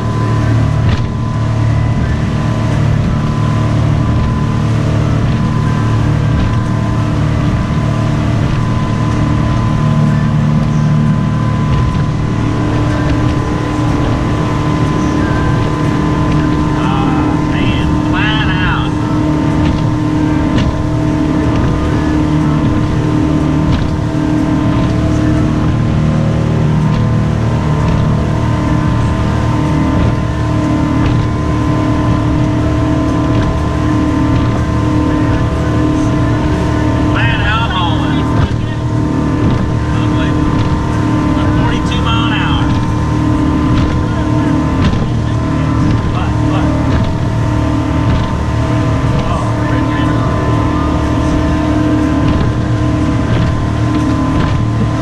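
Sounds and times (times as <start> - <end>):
boat engine drone: 0.0 - 55.0
wind and water rushing: 0.0 - 55.0.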